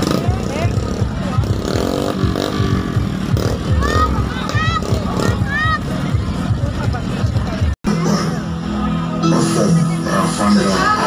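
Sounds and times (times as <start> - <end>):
motorcycle engine running: 0.0 - 9.2
crowd voices: 0.0 - 11.0.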